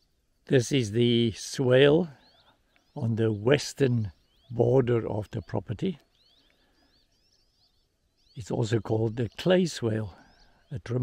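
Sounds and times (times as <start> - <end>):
songbird chirping: 0.0 - 11.0.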